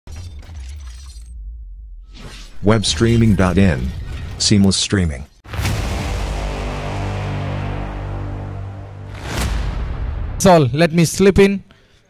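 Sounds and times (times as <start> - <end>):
low rumble: 5.5 - 10.5.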